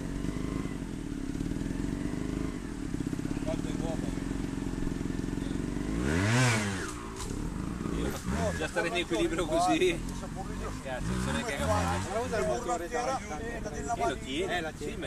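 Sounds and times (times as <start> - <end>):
motorcycle engine idling and revving: 0.0 - 15.0.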